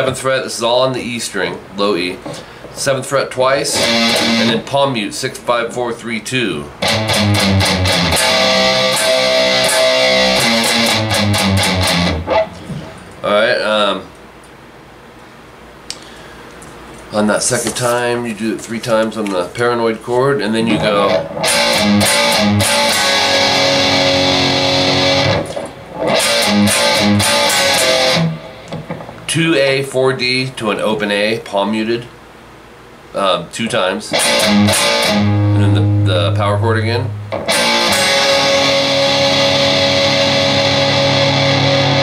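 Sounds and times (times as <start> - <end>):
distorted electric guitar riff: 3.7 - 4.7, 6.8 - 13.0, 20.5 - 29.3, 34.1 - 42.0.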